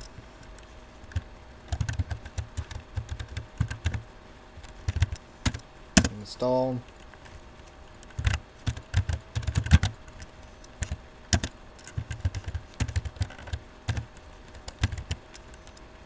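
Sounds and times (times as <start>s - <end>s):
laptop keyboard typing: 1.1s - 6.2s, 8.0s - 15.8s.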